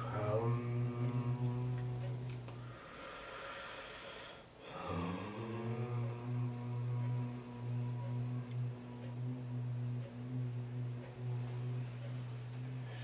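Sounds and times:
man chanting om: 0.0 - 2.5, 4.6 - 13.0.

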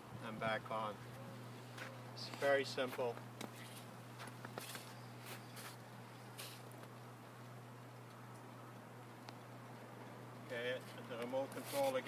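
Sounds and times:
steady low hum: 0.0 - 12.0
footsteps crunching on snow: 1.6 - 6.8.

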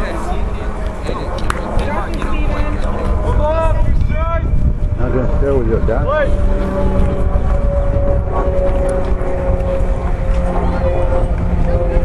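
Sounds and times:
low rumble: 0.0 - 12.0
steady drone: 0.0 - 12.0.

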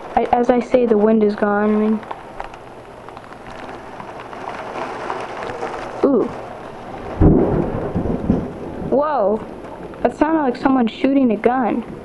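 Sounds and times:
heavy rain: 0.0 - 12.0
close thunderclap: 5.0 - 10.5.

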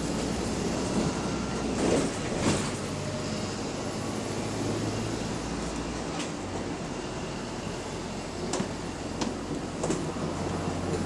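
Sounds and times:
bus body rattling: 0.0 - 4.8, 8.3 - 11.0
bus engine hum: 0.0 - 11.0
road and cabin noise: 0.0 - 11.0.

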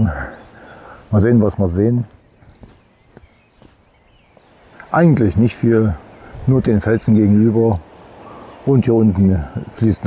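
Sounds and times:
footsteps on rocky path: 2.0 - 4.6.

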